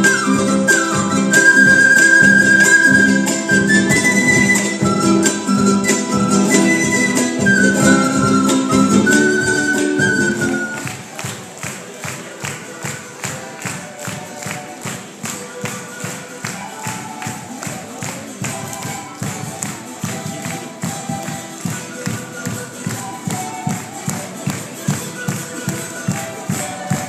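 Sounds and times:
band melody: 0:00.0 - 0:11.2.

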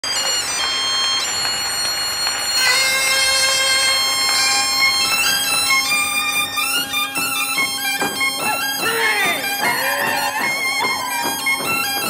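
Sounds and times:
low drone: 0:00.0 - 0:08.5
traditional dance music: 0:00.0 - 0:12.0.

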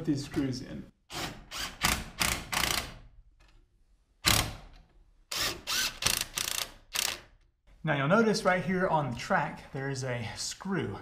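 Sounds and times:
cordless drill driving screws: 0:05.3 - 0:07.2.

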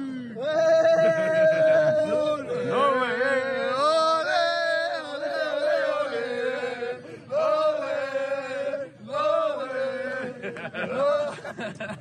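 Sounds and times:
young men chanting together: 0:00.4 - 0:11.6.

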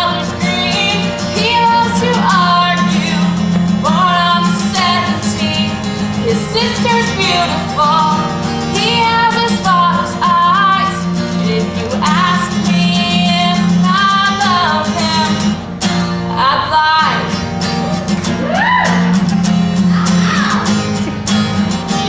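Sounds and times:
woman singing: 0:00.0 - 0:15.6, 0:16.3 - 0:17.4
strummed acoustic guitar: 0:00.0 - 0:22.0.

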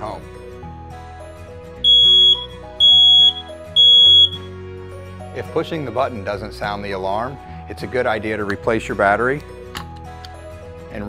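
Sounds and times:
smoke alarm beeps: 0:01.8 - 0:04.5.

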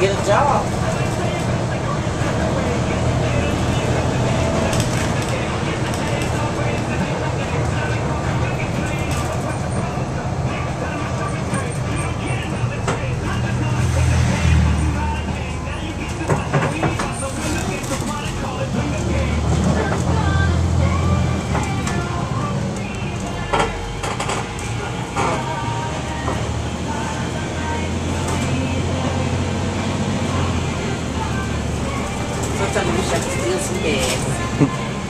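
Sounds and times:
bus body rattling: 0:00.0 - 0:35.0
bus diesel engine droning: 0:00.0 - 0:35.0
voices: 0:00.0 - 0:35.0.

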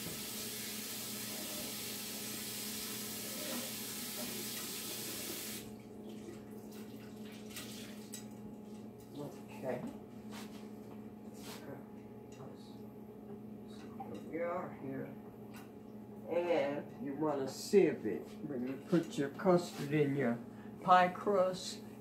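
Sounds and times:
faucet running: 0:00.0 - 0:08.3.

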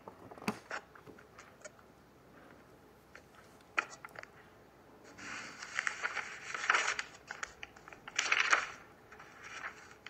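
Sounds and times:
rustling handling noise: 0:05.0 - 0:10.0.

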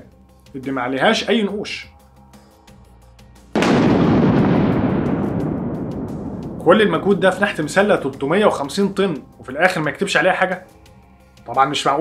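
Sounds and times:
faint background music: 0:00.0 - 0:04.8, 0:06.1 - 0:12.0
loud rumbling boom: 0:03.6 - 0:08.9.

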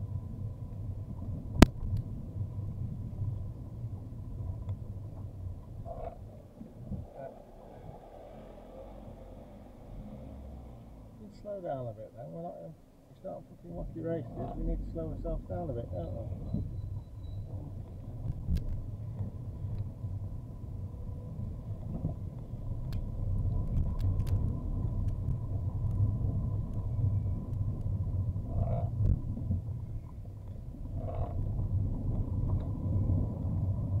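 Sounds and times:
car driving rumble: 0:00.0 - 0:34.0
faint ticks: 0:01.5 - 0:02.1, 0:04.5 - 0:06.7, 0:17.8 - 0:20.0, 0:21.7 - 0:32.8.

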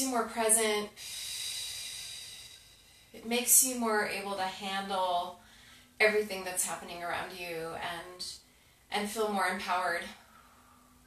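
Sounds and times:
woman exhaling: 0:00.9 - 0:03.2.

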